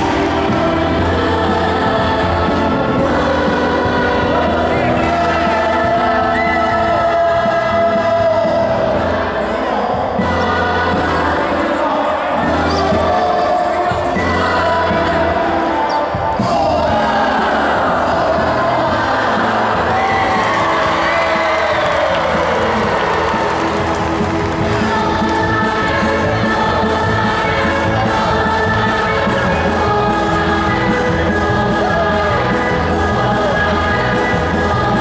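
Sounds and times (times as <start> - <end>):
loud dance music: 0.0 - 35.0.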